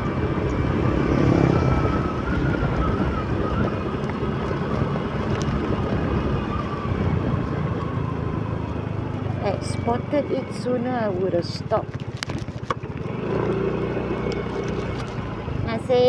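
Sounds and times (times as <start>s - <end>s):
small motorcycle engine running: 0.0s - 16.0s
wind rushing over microphone: 0.0s - 16.0s.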